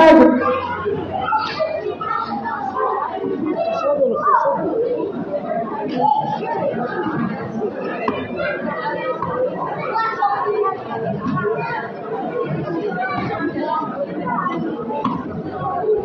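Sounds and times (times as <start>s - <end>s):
murmur of crowd conversation: 0.0s - 16.0s.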